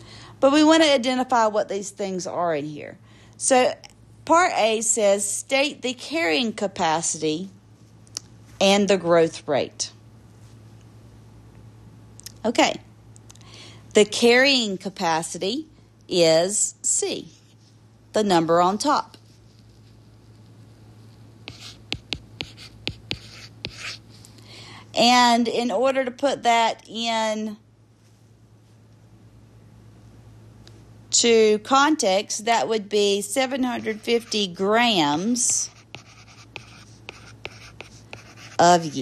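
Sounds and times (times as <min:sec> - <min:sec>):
low steady hum: 0:00.0 - 0:39.0
stylus tapping and scratching: 0:21.4 - 0:24.0, 0:35.6 - 0:39.0.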